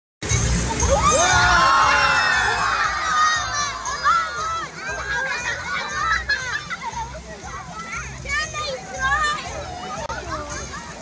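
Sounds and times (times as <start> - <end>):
children shouting and cheering: 0.7 - 11.0.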